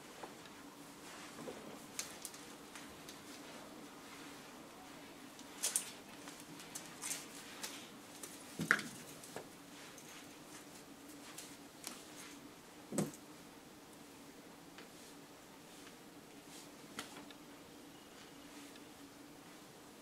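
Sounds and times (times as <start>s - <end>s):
fabric rustling: 0.0s - 13.5s
low steady hum: 0.0s - 20.0s.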